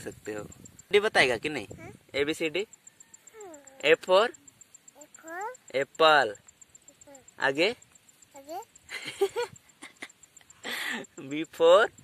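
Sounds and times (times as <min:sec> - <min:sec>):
toddler babbling: 0:01.7 - 0:02.1, 0:03.3 - 0:04.0, 0:04.9 - 0:05.7, 0:06.9 - 0:07.4, 0:08.3 - 0:08.7.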